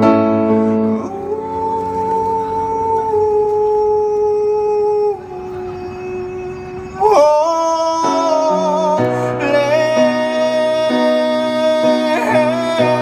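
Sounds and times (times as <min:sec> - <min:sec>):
person singing long held notes: 0:00.0 - 0:13.0.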